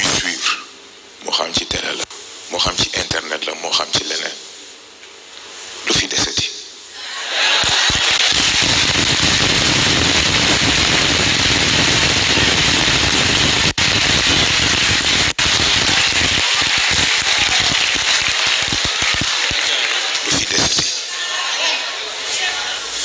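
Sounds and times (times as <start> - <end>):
large audience applauding: 7.2 - 22.1.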